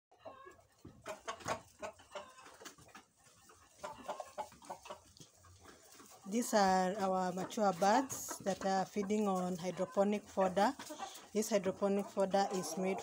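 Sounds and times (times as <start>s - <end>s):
hens clucking: 0.1s - 13.0s.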